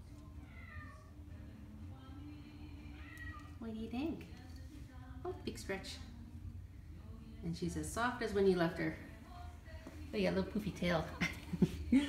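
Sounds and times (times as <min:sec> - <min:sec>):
cat meowing: 0:03.0 - 0:03.6.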